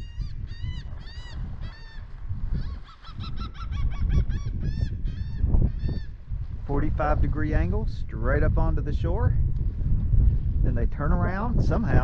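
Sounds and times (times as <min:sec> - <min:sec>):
bird calling: 0:00.0 - 0:06.2
low rumble: 0:04.5 - 0:12.0.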